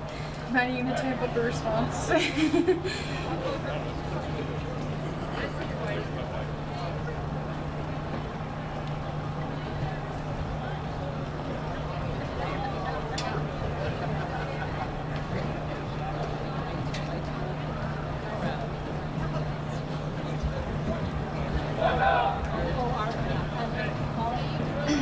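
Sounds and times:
spectators chattering: 0:00.0 - 0:25.0
steady low hum: 0:00.0 - 0:25.0.

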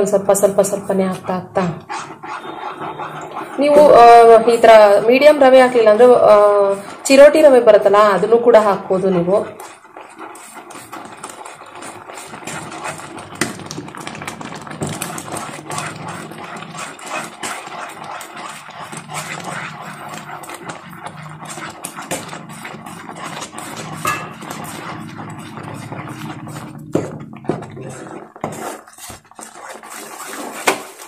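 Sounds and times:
wooden spatula scraping pan: 0:00.0 - 0:31.0.

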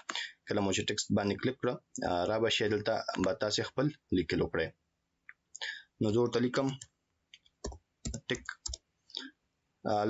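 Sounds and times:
keyboard keys clicking: 0:07.6 - 0:08.8.

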